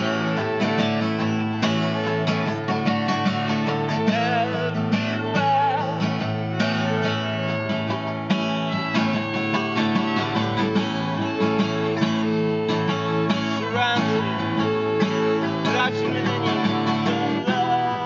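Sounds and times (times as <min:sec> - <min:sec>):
acoustic guitar strumming: 0:00.0 - 0:18.0
violin melody: 0:00.0 - 0:18.0.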